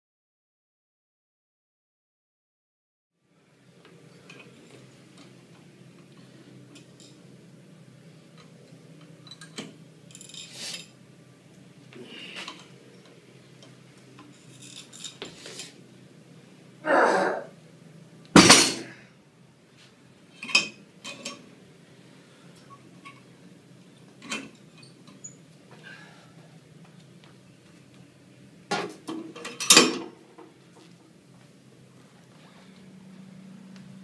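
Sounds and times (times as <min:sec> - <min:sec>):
low room hum: 0:03.2 - 0:34.0.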